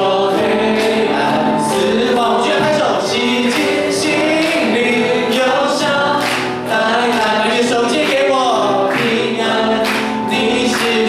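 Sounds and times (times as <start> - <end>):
congregation singing: 0.0 - 11.0
person singing into microphone: 0.0 - 11.0.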